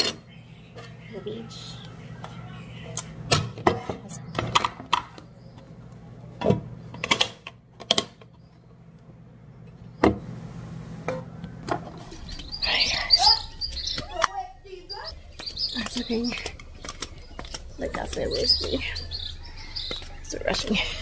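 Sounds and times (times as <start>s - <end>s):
birds chirping: 0.0s - 21.0s
low steady hum: 0.0s - 21.0s.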